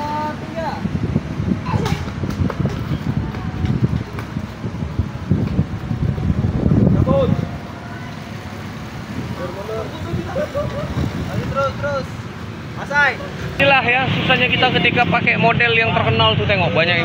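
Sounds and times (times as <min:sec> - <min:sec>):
steady traffic: 0:00.0 - 0:17.0
vehicle rumble: 0:00.0 - 0:17.0.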